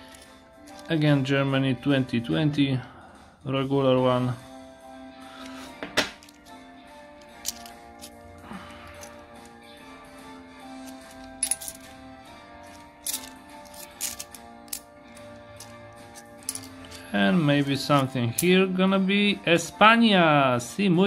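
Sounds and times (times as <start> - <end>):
coins clinking: 0.0 - 1.1, 5.4 - 9.6, 10.6 - 18.6
quiet background music: 0.0 - 21.0.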